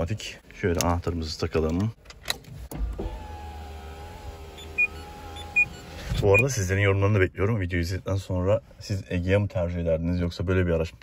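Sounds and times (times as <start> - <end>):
electric window motor whine: 2.8 - 6.1.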